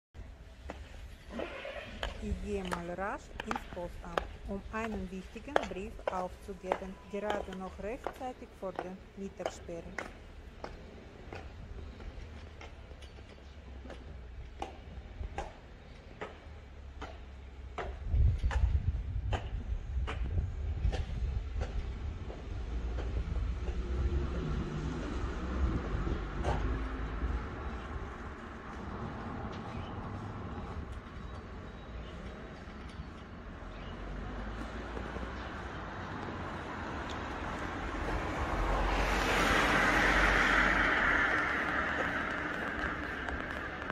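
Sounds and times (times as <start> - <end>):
high heels clicking on stone: 2.0 - 10.8, 34.3 - 43.9
low rumble: 36.2 - 43.9.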